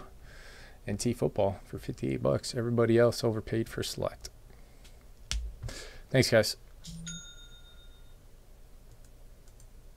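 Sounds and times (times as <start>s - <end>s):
bell-like ding: 6.8s - 8.2s.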